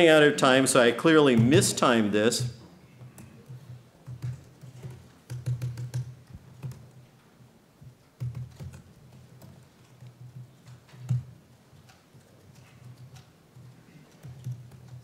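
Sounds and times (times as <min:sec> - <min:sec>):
typing on a keyboard: 0:03.0 - 0:07.0, 0:08.2 - 0:15.0.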